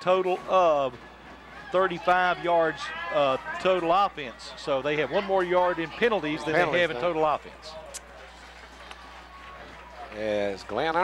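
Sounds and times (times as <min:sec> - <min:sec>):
distant crowd noise: 0:00.0 - 0:11.0.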